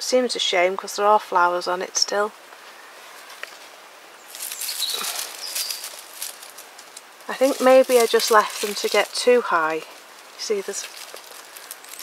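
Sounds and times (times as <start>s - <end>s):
dry foliage rustling: 2.4s - 12.0s.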